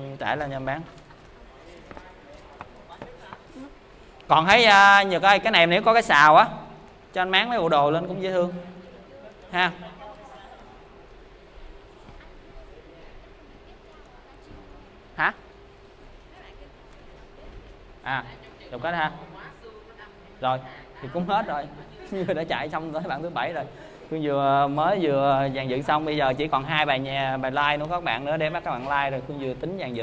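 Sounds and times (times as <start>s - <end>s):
faint steady hum: 0.0s - 30.0s.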